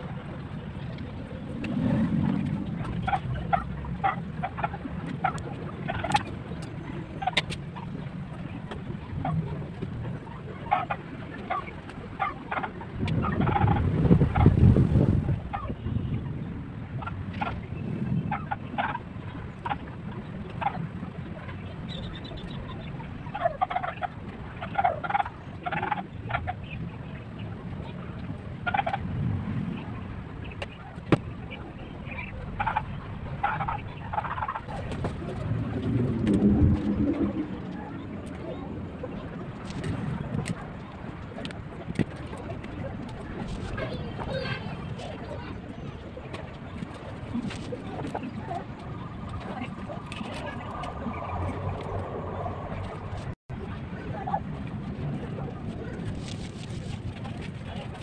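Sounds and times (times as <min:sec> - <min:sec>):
low rumbling noise: 0:00.0 - 0:58.0.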